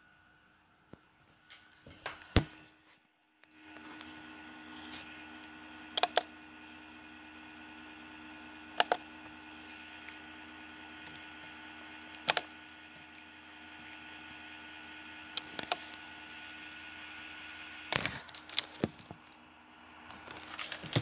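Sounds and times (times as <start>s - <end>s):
faint steady hum: 0.0s - 21.0s
laptop clicks: 5.9s - 6.3s.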